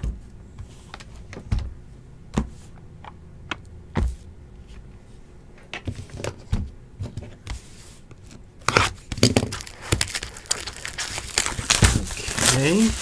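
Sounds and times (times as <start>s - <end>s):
plastic shrink wrap crinkling: 8.7s - 13.0s.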